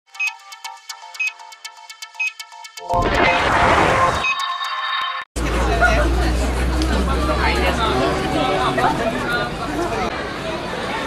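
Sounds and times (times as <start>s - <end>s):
bright repeated electronic notes: 0.1s - 5.2s.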